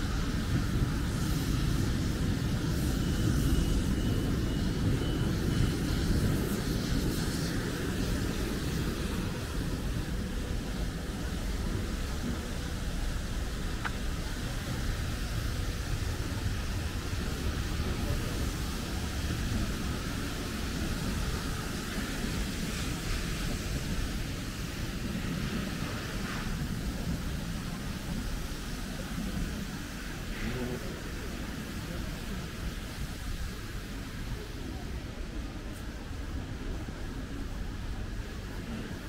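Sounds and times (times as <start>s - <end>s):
traffic rumble with hiss: 0.0s - 39.0s.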